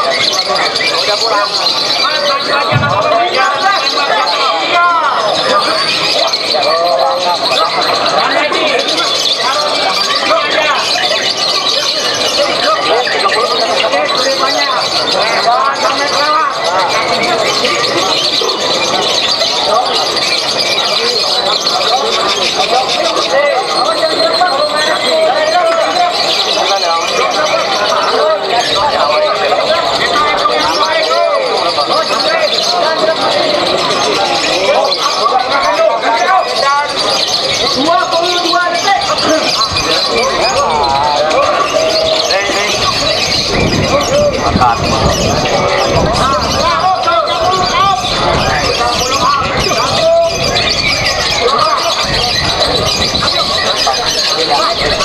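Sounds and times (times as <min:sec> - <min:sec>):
crowd shouting and talking: 0:00.0 - 0:55.0
lovebirds chattering and squealing: 0:00.0 - 0:55.0.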